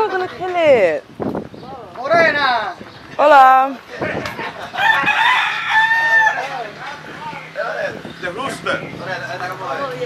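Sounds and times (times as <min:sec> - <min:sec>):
rooster crowing: 0:04.8 - 0:06.6.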